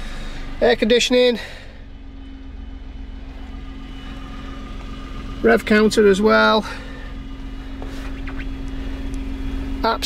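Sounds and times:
small car engine idling: 0.0 - 10.0.

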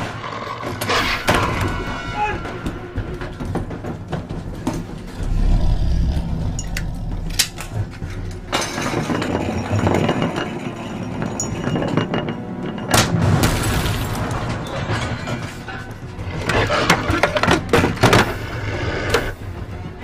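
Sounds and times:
tense music: 0.0 - 9.9, 10.5 - 20.0
metal canister rolling on wood: 2.9 - 13.0, 14.1 - 19.4
deep low rumble: 5.1 - 8.5.

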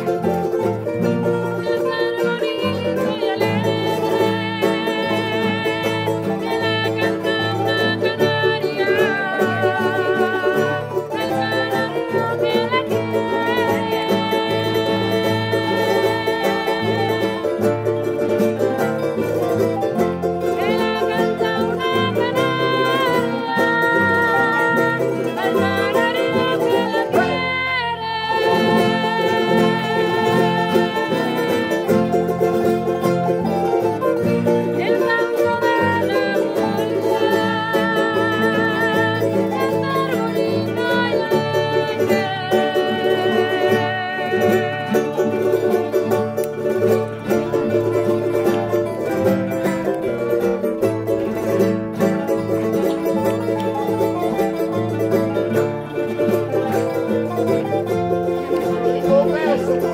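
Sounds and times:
bright plucked string melody: 0.0 - 59.9
classical guitars strumming chords: 0.0 - 59.9.

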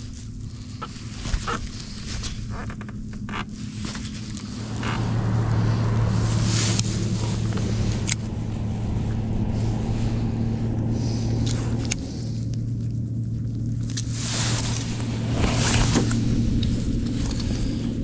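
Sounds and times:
boat motor humming: 0.0 - 18.0.

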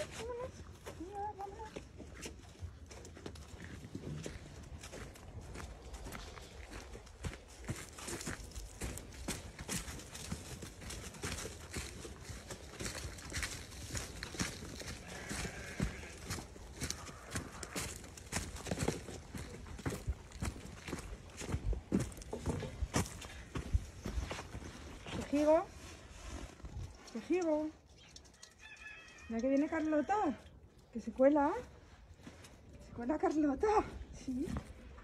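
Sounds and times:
footsteps crunching dry leaves: 3.6 - 26.7.

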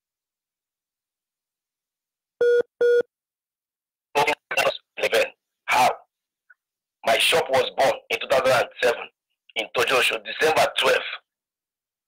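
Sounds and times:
short telephone beeps: 2.4 - 3.1.

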